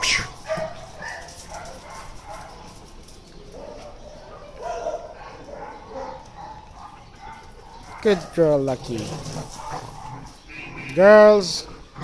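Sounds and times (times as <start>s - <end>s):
faint dog barking: 3.6s - 8.4s.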